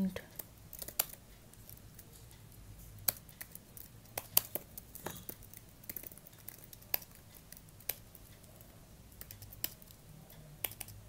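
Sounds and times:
computer keyboard typing: 0.2s - 11.0s.

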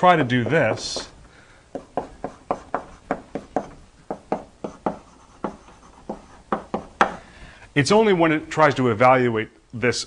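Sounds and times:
chalk writing on blackboard: 0.2s - 7.2s.

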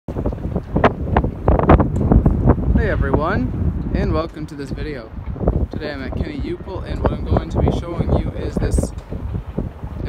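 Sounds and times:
wind buffeting microphone: 0.1s - 10.0s.

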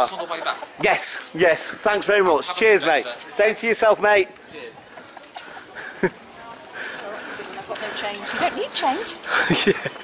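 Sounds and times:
faint chatter of passers-by: 0.0s - 10.0s.

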